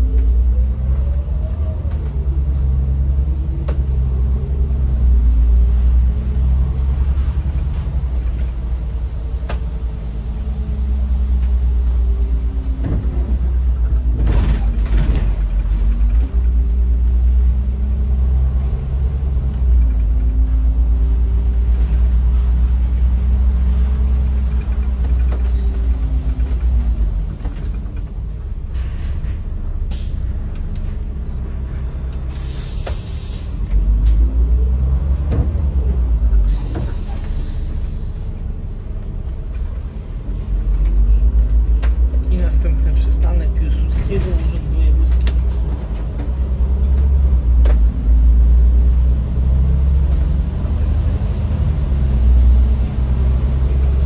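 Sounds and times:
bus diesel engine rumble: 0:00.0 - 0:54.0
air brake hiss: 0:29.9 - 0:30.2, 0:32.3 - 0:33.6.

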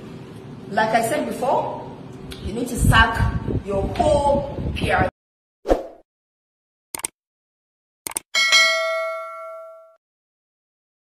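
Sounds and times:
bell ding: 0:08.4 - 0:10.0.

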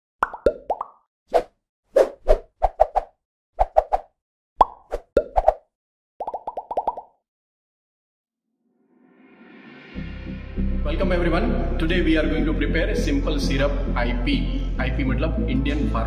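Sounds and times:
cartoon pops gliding in pitch: 0:00.2 - 0:01.0, 0:04.6 - 0:05.6, 0:06.2 - 0:07.2.

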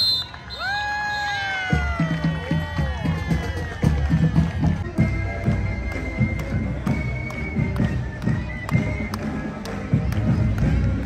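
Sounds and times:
marching band drums: 0:01.5 - 0:11.0.

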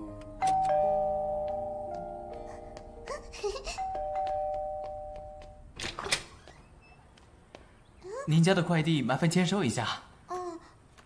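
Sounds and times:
two-note doorbell chime: 0:00.4 - 0:02.9, 0:03.8 - 0:05.7.

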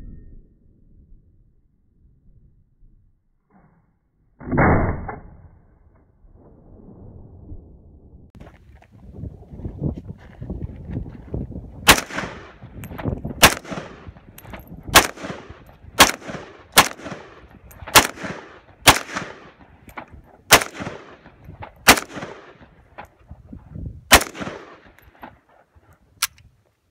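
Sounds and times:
rifle shots with echo: 0:11.8 - 0:23.1, 0:24.1 - 0:25.5.

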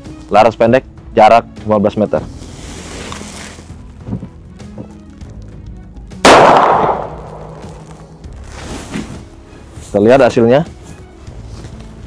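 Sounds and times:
revolver shot: 0:06.3 - 0:08.2.

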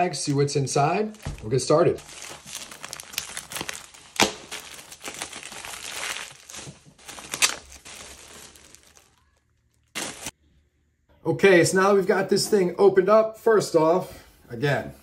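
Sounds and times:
plastic crinkling and rustling: 0:00.2 - 0:10.4
plastic mailer ripping: 0:01.1 - 0:10.4.

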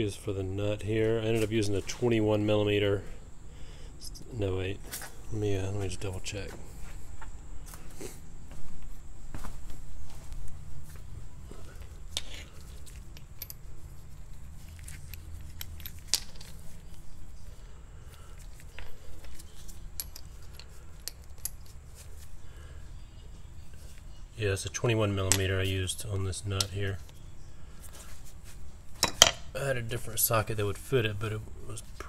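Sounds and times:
low rumble of handling noise: 0:00.0 - 0:32.0
ratchet sockets clinking: 0:12.1 - 0:13.7, 0:14.6 - 0:16.7, 0:18.4 - 0:21.8.

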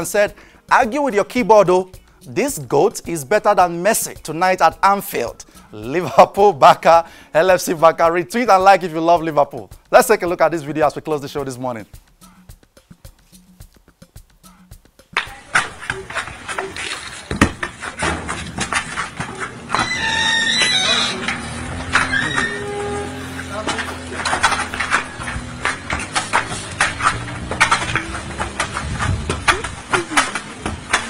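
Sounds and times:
football knocking on concrete: 0:15.2 - 0:20.0, 0:23.7 - 0:31.0
people's voices: 0:15.2 - 0:31.0.

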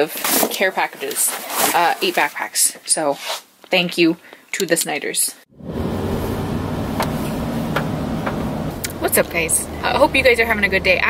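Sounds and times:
truck engine and tyres on wet road: 0:05.5 - 0:11.0.

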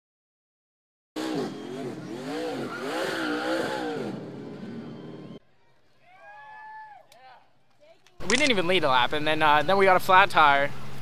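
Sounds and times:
race car engine revving: 0:01.2 - 0:05.4
tyres spinning and squealing: 0:01.2 - 0:05.4.

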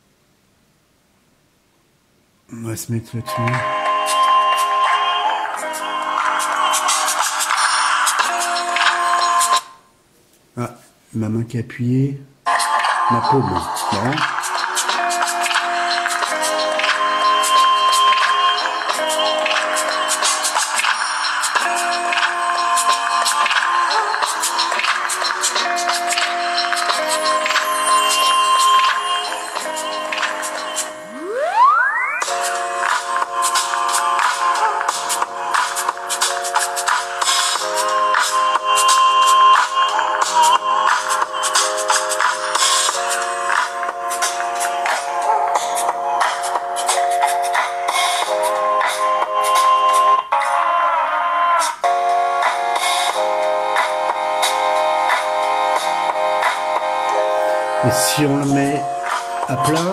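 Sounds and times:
voice: 0:02.5 - 0:03.7, 0:10.6 - 0:12.3, 0:13.1 - 0:14.3, 0:57.8 - 0:58.9, 0:59.5 - 0:59.9
music through phone loudspeaker: 0:02.6 - 0:09.7, 0:12.5 - 0:51.0, 0:51.8 - 0:59.9
sweep rising in pitch: 0:31.0 - 0:32.6.

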